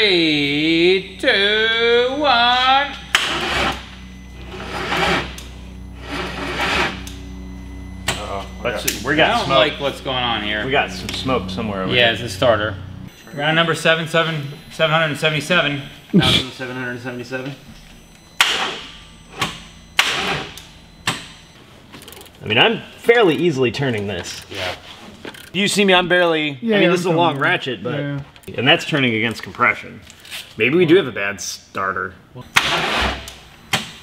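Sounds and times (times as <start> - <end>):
starter motor cranking slowly: 0.3 - 13.4.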